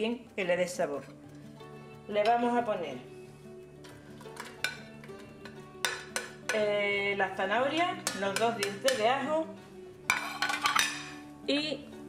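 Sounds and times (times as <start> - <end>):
soft background music: 0.0 - 12.0
clinks and knocks in pot: 4.2 - 6.7, 8.0 - 9.2, 10.1 - 11.2.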